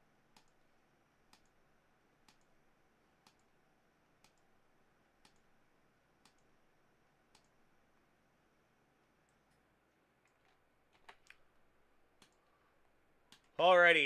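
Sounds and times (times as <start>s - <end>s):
computer mouse clicks: 0.3s - 0.7s, 1.3s - 1.6s, 2.2s - 2.6s, 3.2s - 3.6s, 4.2s - 4.6s, 5.2s - 5.6s, 6.2s - 6.6s, 7.3s - 7.6s, 9.2s - 11.6s, 12.2s - 12.6s, 13.3s - 13.6s.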